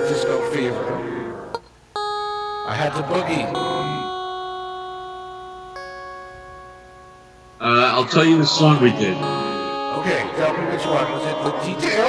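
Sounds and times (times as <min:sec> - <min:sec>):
guitar chord ringing: 0:00.0 - 0:12.0.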